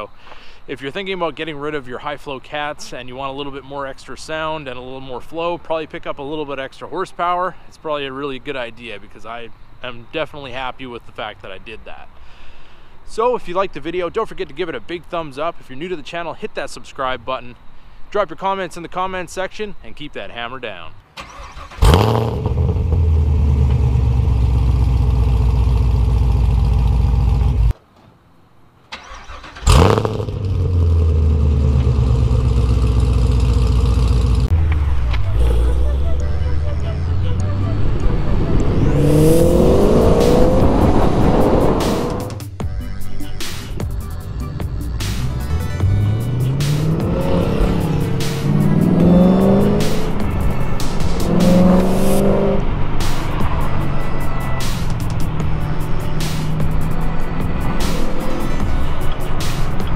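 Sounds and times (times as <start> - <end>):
car engine accelerating: 21.2 - 27.7, 28.9 - 42.6, 44.2 - 59.9.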